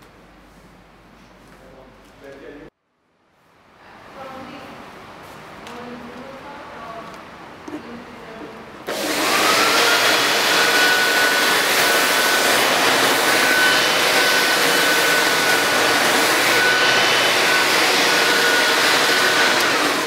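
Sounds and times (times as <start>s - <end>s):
vacuum cleaner motor running: 8.9s - 20.0s.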